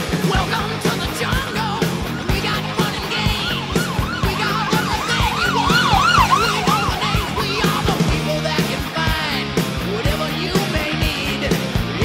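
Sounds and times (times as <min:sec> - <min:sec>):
rock music with drum beat: 0:00.0 - 0:12.0
siren in fast yelp: 0:01.2 - 0:08.4.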